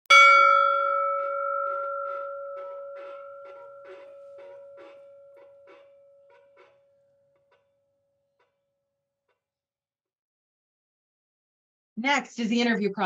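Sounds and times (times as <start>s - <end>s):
bell-like chime ringing: 0.1s - 6.7s.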